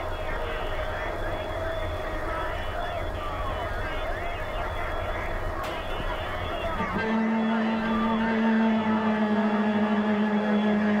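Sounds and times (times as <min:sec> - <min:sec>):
sustained low drone: 0:00.0 - 0:11.0.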